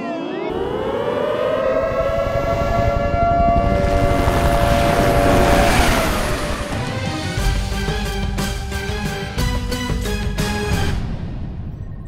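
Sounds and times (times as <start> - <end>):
air-raid siren wailing: 0.0 - 7.3
low rumble: 0.5 - 7.7.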